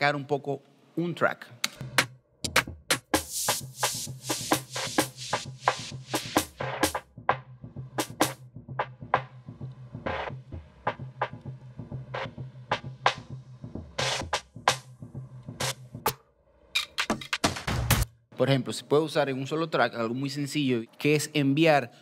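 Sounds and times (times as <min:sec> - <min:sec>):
electronic beat with bass line: 0:01.8 - 0:16.1.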